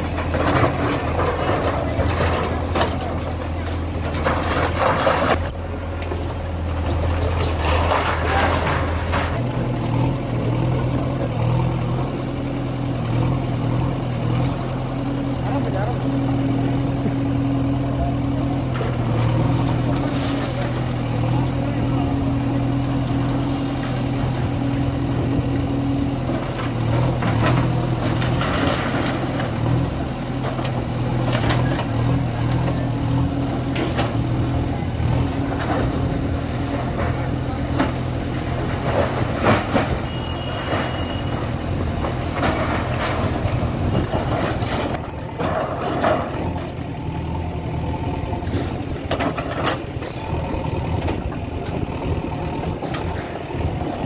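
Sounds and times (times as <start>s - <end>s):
rubble falling and scraping: 0.0s - 5.6s, 6.2s - 9.4s, 18.7s - 21.1s, 26.4s - 29.8s, 35.1s - 46.7s
diesel engine running: 0.0s - 54.0s.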